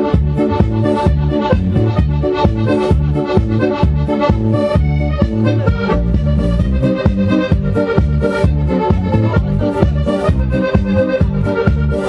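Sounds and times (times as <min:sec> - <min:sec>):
accordion dance music: 0:00.0 - 0:12.0
steady bass beat: 0:00.0 - 0:12.0.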